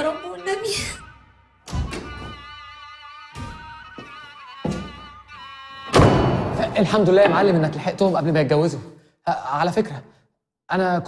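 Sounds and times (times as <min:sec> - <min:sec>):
film score melody: 0:00.0 - 0:08.3
loud hit: 0:06.0 - 0:07.8.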